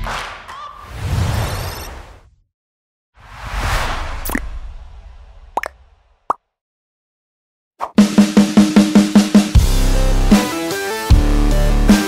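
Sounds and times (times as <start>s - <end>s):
whoosh with low rumble: 3.2s - 6.2s.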